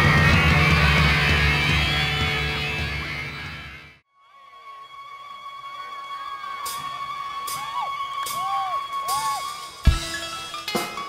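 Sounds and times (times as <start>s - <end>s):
band playing: 0.0s - 3.9s, 7.4s - 11.0s
bamboo flute melody: 4.3s - 10.8s.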